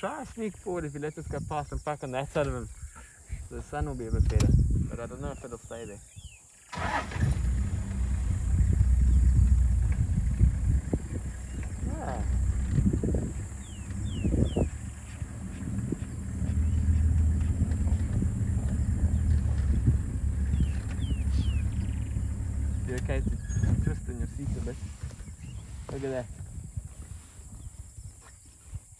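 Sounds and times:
vehicle engine rumbling: 0.0 - 28.9.

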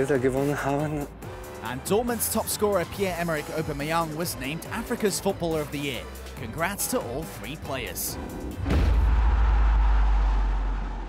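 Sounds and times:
deep rumble sound effect: 8.2 - 11.0.

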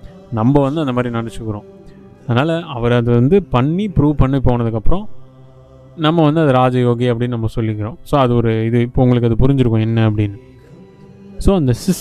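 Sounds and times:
low background drone: 0.0 - 12.0
man chanting: 0.0 - 12.0.

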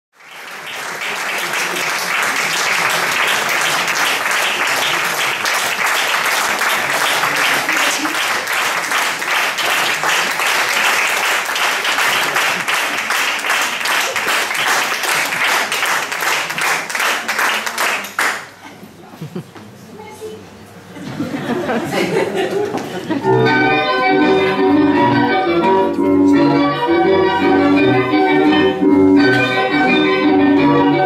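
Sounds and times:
audience applause: 0.2 - 18.6.

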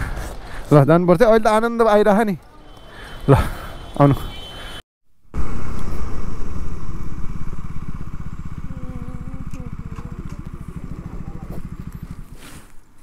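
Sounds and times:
motorcycle engine running: 5.3 - 13.0.

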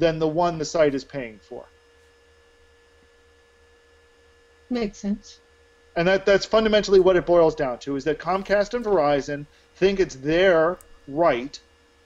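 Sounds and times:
faint low hum: 0.0 - 12.0
thin steady tone: 0.0 - 12.0.

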